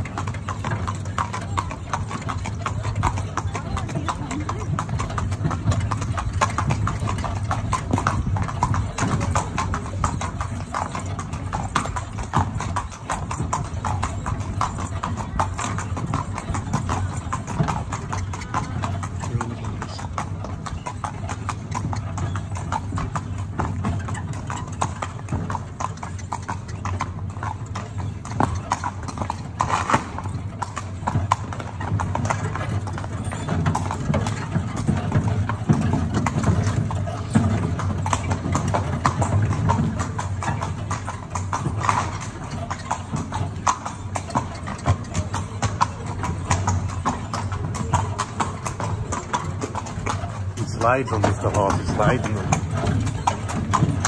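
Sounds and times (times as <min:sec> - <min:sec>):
carriage rolling rumble: 0:00.0 - 0:54.0
horse hooves clip-clopping: 0:00.0 - 0:54.0.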